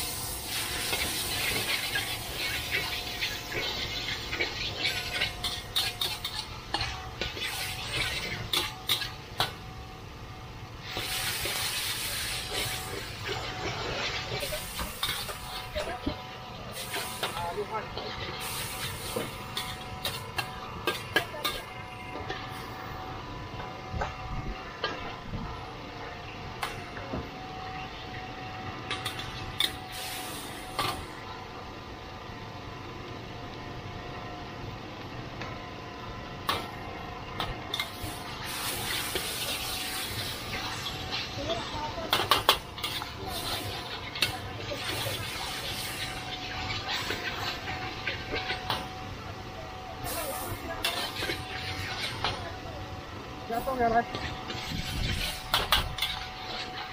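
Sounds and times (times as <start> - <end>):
food sizzling: 0.0 - 9.7, 10.6 - 22.9, 37.7 - 49.0, 50.0 - 52.5
metal spatula scraping a wok: 0.1 - 9.2, 10.8 - 15.7, 37.7 - 48.7, 50.8 - 52.2, 54.1 - 56.9.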